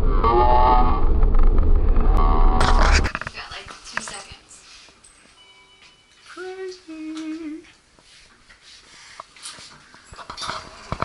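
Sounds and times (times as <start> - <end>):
person humming: 6.4 - 7.7.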